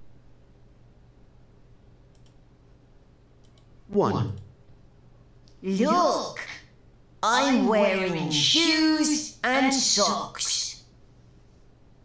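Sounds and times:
low steady hum: 0.0 - 12.0
computer mouse clicks: 2.1 - 2.4, 3.4 - 3.7.

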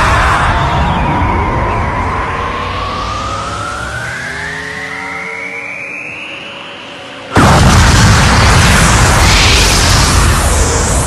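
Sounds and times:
rising energy whine effect: 0.0 - 11.0.

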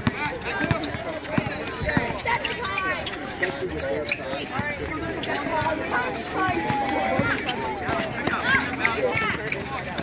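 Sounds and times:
sneakers and ball thudding on asphalt: 0.0 - 2.2
people shouting and calling out: 0.0 - 10.0.

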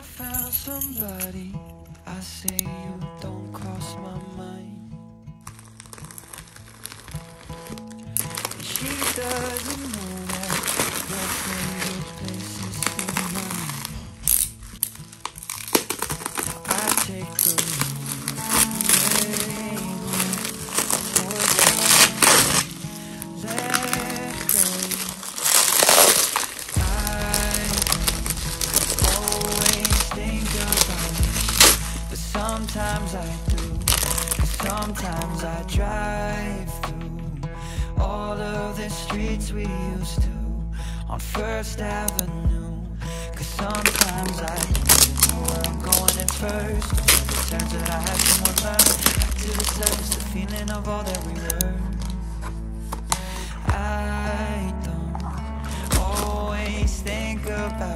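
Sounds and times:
background music: 0.0 - 57.9
plastic bag and bubble wrap crinkling: 5.4 - 36.6, 43.3 - 57.9.

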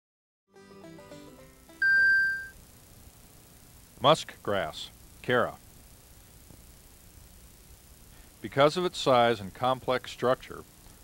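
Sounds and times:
loud high held tone: 1.8 - 2.6.

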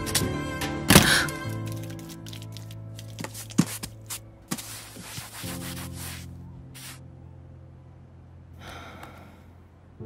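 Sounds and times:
hand rubbing painted wood: 2.6 - 7.0.

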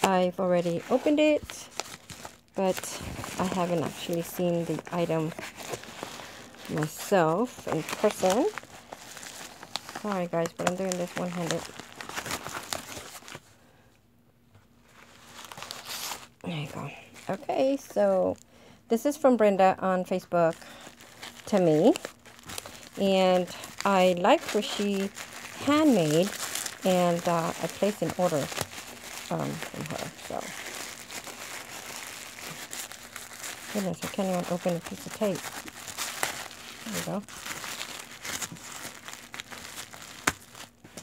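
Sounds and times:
packaging rustling: 0.0 - 13.6, 14.8 - 18.4, 20.3 - 41.0
tissue paper crinkling: 0.0 - 13.6, 14.8 - 18.4, 19.8 - 41.0
faint steady hum: 0.0 - 41.0.

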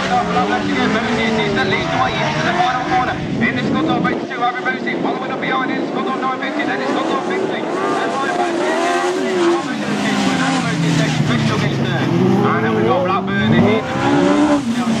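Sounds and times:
race car engines at high revs: 0.0 - 15.0.

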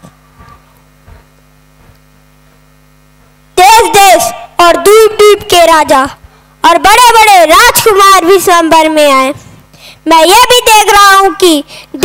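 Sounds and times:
electrical mains hum: 0.0 - 12.0
child speaking into a microphone: 3.6 - 12.0.

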